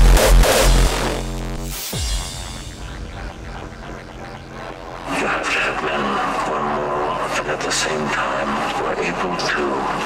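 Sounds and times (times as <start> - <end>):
sound effects: 0.0 - 7.7
hardcore techno music: 0.0 - 10.0
spoken voice sample: 5.0 - 10.0.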